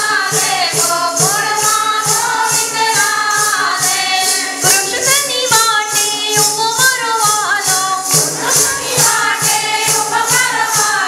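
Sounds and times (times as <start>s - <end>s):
jingles shaken: 0.0s - 11.0s
voices singing devotional song: 0.0s - 11.0s.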